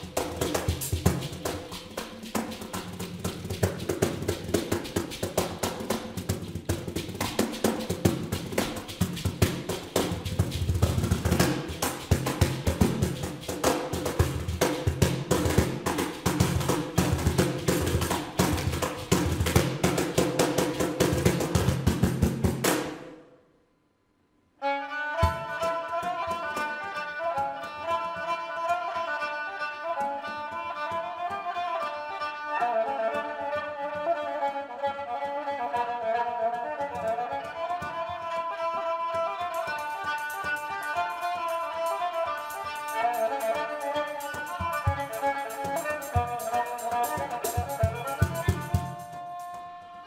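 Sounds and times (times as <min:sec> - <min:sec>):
cajon slaps and bass strokes: 0:00.0 - 0:23.1, 0:25.2 - 0:26.8, 0:36.9 - 0:49.8.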